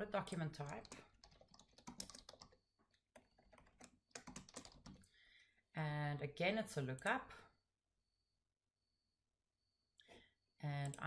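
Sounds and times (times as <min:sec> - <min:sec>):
faint keyboard typing: 0:00.2 - 0:05.2.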